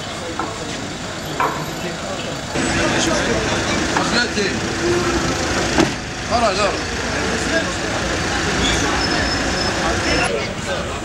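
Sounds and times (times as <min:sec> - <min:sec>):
van engine idling: 0:00.0 - 0:10.3.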